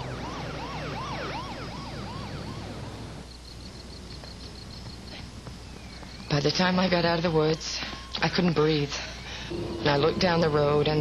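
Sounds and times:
fire truck siren yelping: 0.0s - 3.2s.

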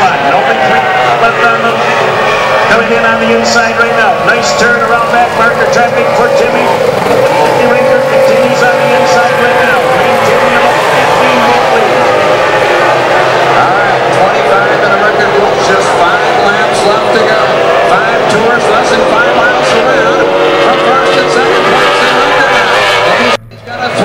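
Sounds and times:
racing powerboat engines: 0.0s - 24.0s.

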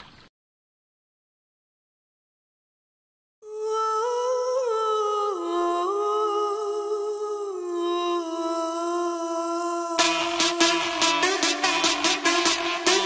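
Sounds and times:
wordless singing in long notes: 3.4s - 13.0s.

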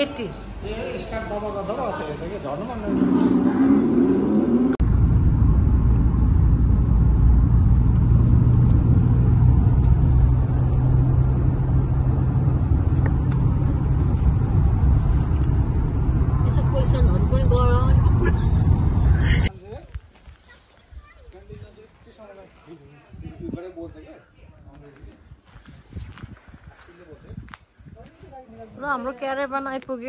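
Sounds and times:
car cabin road noise: 2.7s - 19.2s.

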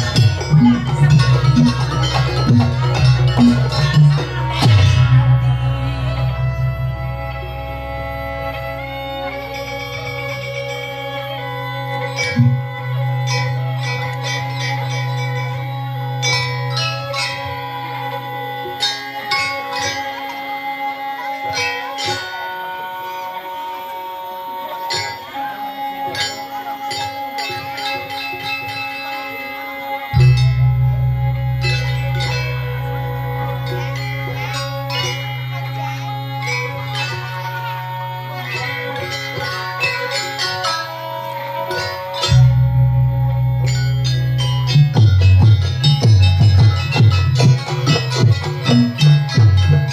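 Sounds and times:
gamelan ensemble playing: 0.0s - 49.9s
metallophones struck in ringing pattern: 0.0s - 49.9s.

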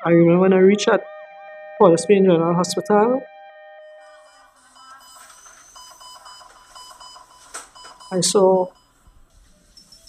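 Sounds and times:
rapid electronic beeping: 3.9s - 10.0s.

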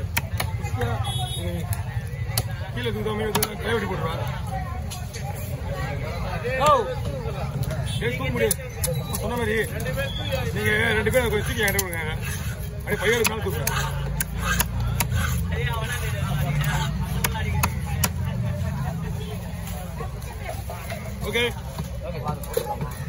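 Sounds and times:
low traffic rumble: 0.0s - 23.0s
market voices: 0.0s - 23.0s.

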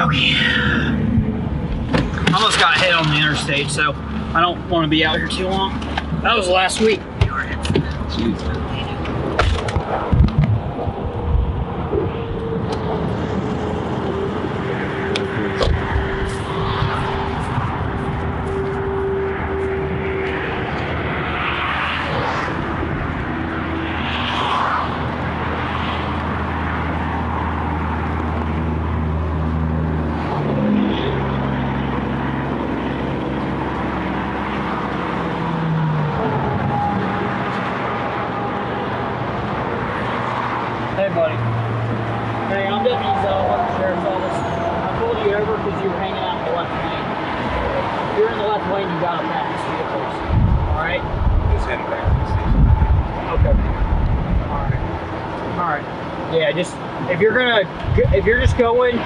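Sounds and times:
highway traffic passing: 0.0s - 59.0s.

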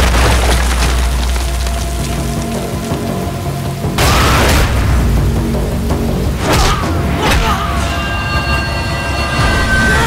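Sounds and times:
heavy rain falling: 0.0s - 6.0s
film score sustained notes: 1.5s - 10.0s.

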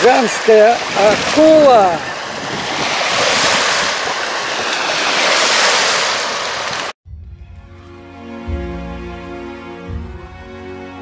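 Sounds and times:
small waves washing onto sand: 0.0s - 7.0s.

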